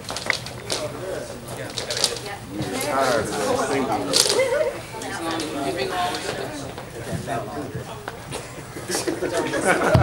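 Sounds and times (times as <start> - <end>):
indistinct group voices: 2.2 - 10.0
people chanting: 2.3 - 7.9.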